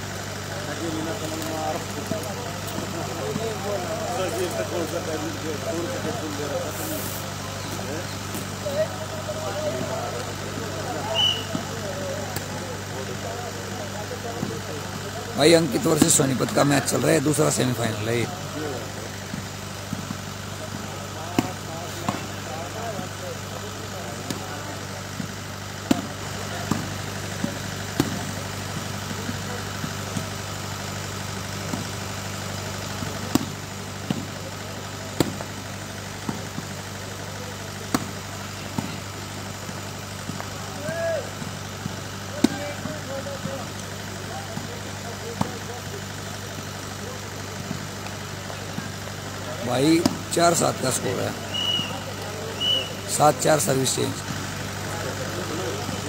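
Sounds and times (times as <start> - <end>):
faint distant voices: 0.0 - 30.5, 32.6 - 56.0
volleyball hand slaps: 21.3 - 22.3, 25.8 - 28.2, 33.0 - 34.3, 35.2 - 35.5, 37.9 - 39.0, 41.4 - 43.6, 50.0 - 50.2.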